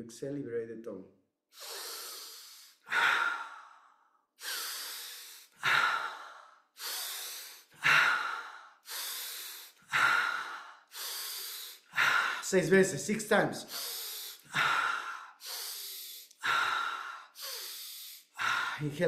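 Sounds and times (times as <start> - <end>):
man breathing deeply: 1.5 - 13.0, 13.6 - 19.0.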